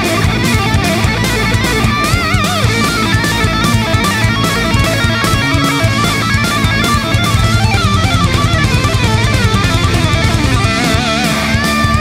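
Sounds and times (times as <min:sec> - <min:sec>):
bass: 0:00.0 - 0:12.0
drum kit beat: 0:00.0 - 0:12.0
electric guitar lead: 0:00.0 - 0:12.0.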